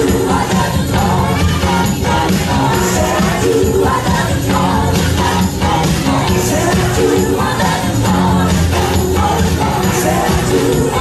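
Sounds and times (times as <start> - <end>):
voices singing along: 0.0 - 11.0.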